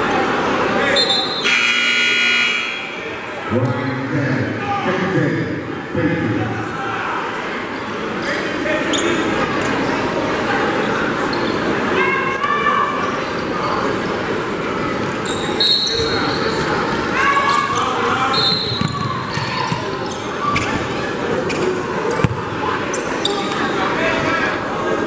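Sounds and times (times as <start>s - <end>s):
crowd voices and shouts: 0.0s - 25.0s
shoes squeaking on court: 11.3s - 11.7s, 15.2s - 16.7s, 17.4s - 23.7s
basketball bouncing on wooden floor: 22.2s - 22.4s.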